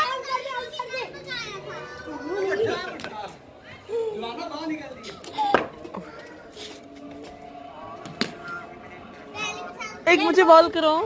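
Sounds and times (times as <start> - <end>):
children playing chatter: 0.0 - 10.7
faint music: 0.0 - 11.0.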